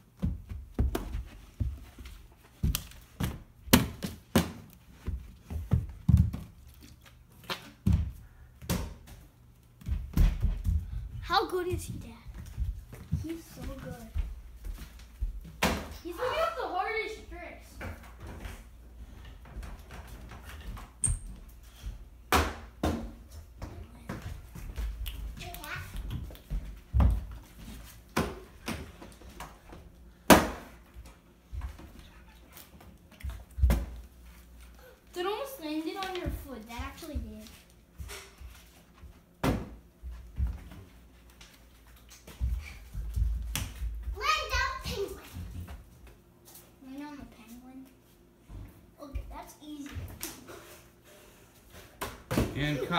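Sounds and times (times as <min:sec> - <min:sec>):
child's voice: 0:11.2 - 0:12.3, 0:13.2 - 0:14.3, 0:16.0 - 0:17.7, 0:25.4 - 0:26.0, 0:34.8 - 0:37.5, 0:44.2 - 0:45.4, 0:49.0 - 0:50.1.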